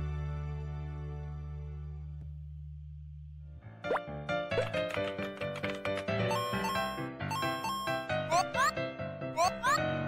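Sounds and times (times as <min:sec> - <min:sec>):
cartoonish jingle: 0:06.3 - 0:08.7.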